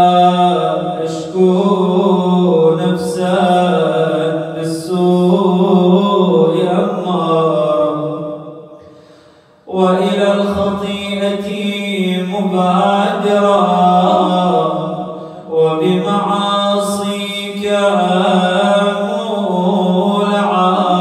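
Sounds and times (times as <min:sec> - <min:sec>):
man chanting: 0:00.0 - 0:08.4, 0:09.7 - 0:21.0
man breathing: 0:08.8 - 0:09.7, 0:15.0 - 0:15.5.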